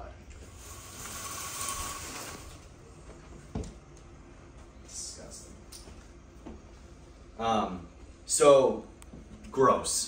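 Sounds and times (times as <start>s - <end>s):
blind slats rattling: 0.6s - 2.6s.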